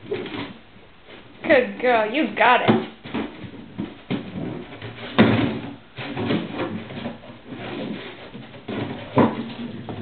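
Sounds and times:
plastic jug knocking on floor: 0:02.7 - 0:10.0.

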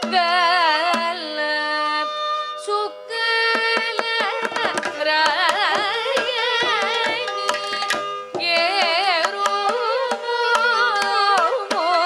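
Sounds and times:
tanpura drone: 0:00.0 - 0:12.0
violin: 0:00.0 - 0:12.0
woman singing: 0:00.0 - 0:12.0
drum strokes: 0:03.6 - 0:12.0.

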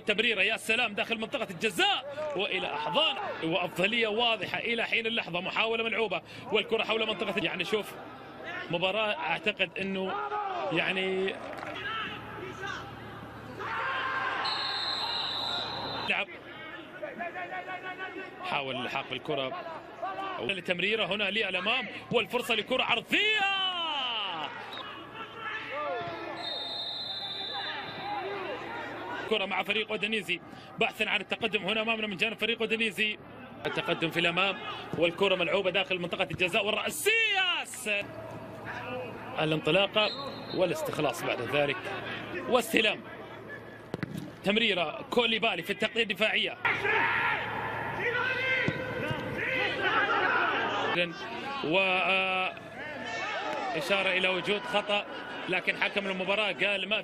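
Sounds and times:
players shouting: 0:02.1 - 0:04.2, 0:06.9 - 0:32.1, 0:46.6 - 0:57.0
referee's whistle blast: 0:14.4 - 0:16.2, 0:26.3 - 0:28.3, 0:40.0 - 0:40.8
ball being kicked: 0:43.9 - 0:44.3.

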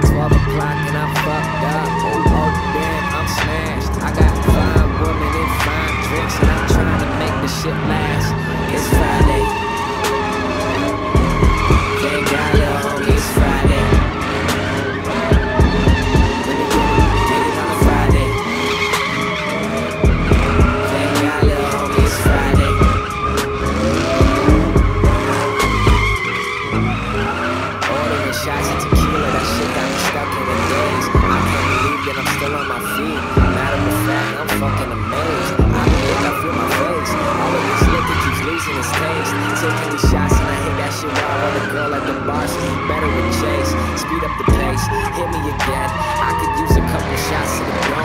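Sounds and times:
bass-heavy music: 0:00.0 - 0:48.0
truck engine revving: 0:00.0 - 0:48.0
tyres squealing: 0:00.0 - 0:48.0.

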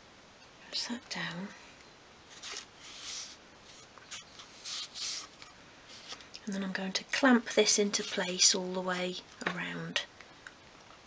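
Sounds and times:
fingertips rubbing on wood: 0:07.7 - 0:08.4.

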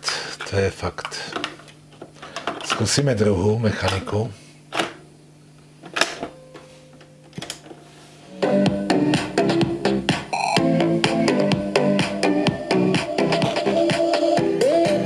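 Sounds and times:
music from boombox speakers: 0:08.3 - 0:15.0.

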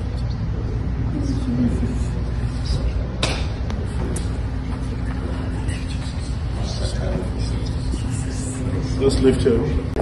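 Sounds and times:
faint constant hum: 0:00.0 - 0:10.0
faint indistinct voices: 0:00.0 - 0:10.0
low room rumble: 0:00.0 - 0:10.0.

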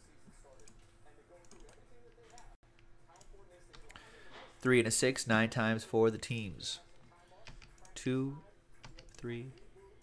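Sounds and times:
keyboard clicking: 0:01.4 - 0:02.5, 0:07.4 - 0:08.0.

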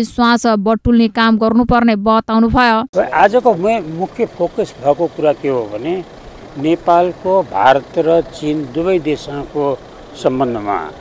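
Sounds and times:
man speaking: 0:03.0 - 0:11.0.

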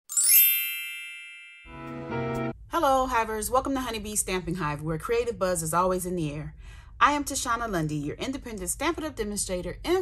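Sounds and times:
sparkling chime cascade: 0:00.1 - 0:02.0.

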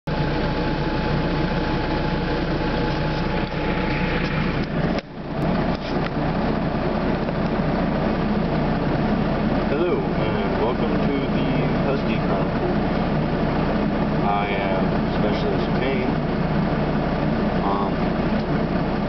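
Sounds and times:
thin steady whine: 0:00.1 - 0:19.0
vehicle engine droning: 0:00.1 - 0:19.0.

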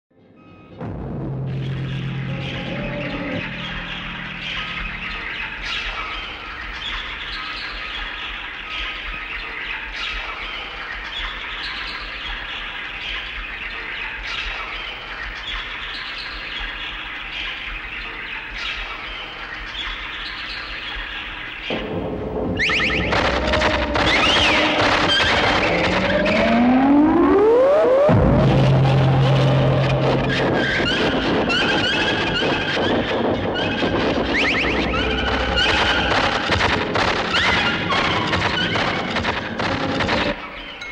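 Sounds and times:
low hum: 0:00.8 - 0:06.7, 0:21.7 - 0:40.0
pulsing high-pitched texture: 0:21.7 - 0:40.4
squeals and pitch glides: 0:21.7 - 0:40.9.

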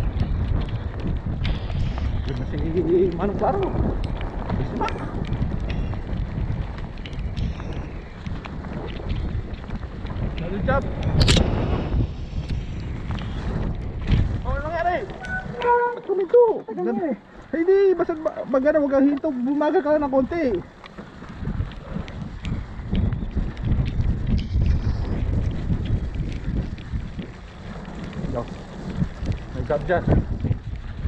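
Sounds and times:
bike clicks and rattles: 0:00.0 - 0:31.0
tyres rolling over dirt: 0:00.0 - 0:31.0
wind buffeting microphone: 0:00.0 - 0:31.0
rider calling out: 0:14.8 - 0:17.2.

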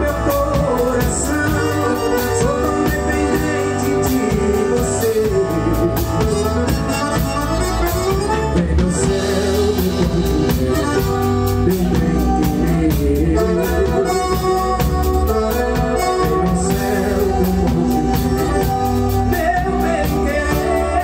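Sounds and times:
live band playing: 0:00.0 - 0:21.0
man singing into a microphone: 0:00.0 - 0:21.0
piano accordion: 0:00.0 - 0:21.0.

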